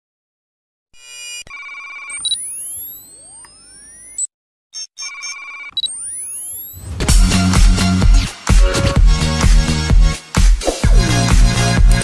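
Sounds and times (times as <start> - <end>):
electronic beeping tones: 1.0 - 7.0.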